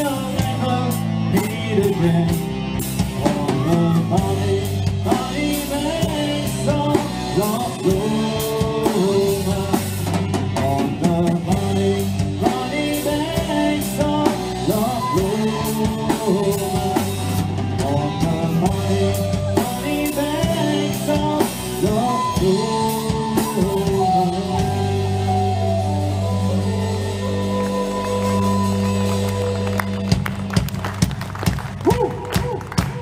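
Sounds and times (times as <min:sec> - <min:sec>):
man singing: 0:00.0 - 0:29.6
bass guitar: 0:00.0 - 0:33.0
drum kit: 0:00.0 - 0:33.0
electric and acoustic guitars: 0:00.0 - 0:33.0.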